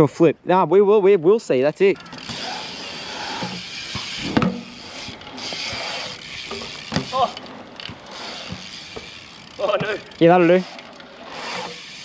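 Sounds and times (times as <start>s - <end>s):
bike freewheel ticking: 1.7s - 12.0s
tyres hissing on concrete: 1.9s - 12.0s.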